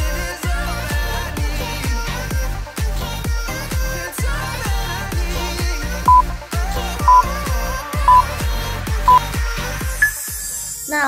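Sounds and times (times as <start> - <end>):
electronic dance music: 0.0 - 11.0
short high beeps: 7.1 - 7.3, 10.0 - 10.5.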